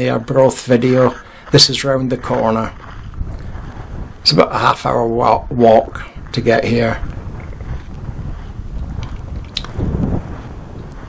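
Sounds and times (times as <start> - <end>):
footsteps crunching on pebbles: 0.0 - 11.0
wind buffeting microphone: 0.0 - 11.0.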